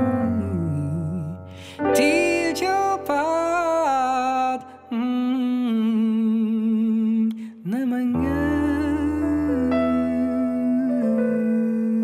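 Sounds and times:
person singing a long note: 8.1s - 12.0s.

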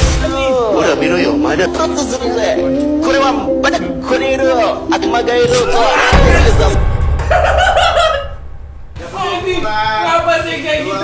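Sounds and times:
deep bass sound: 5.4s - 10.3s.

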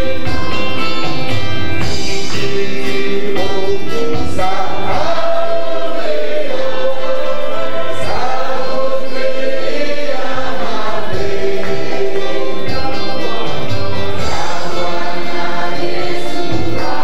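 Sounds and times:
congregation singing gospel song: 0.0s - 17.0s.

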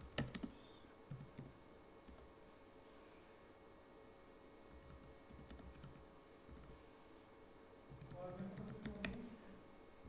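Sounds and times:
keyboard typing: 0.0s - 2.3s, 4.7s - 6.8s, 7.9s - 9.3s.

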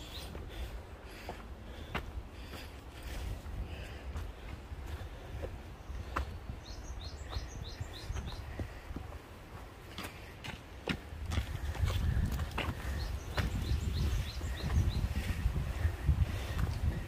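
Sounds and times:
footsteps on trail: 0.0s - 17.0s.

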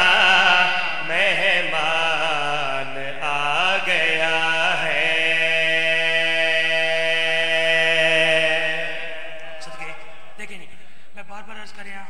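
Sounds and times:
man singing long ornamented notes: 0.0s - 10.5s.

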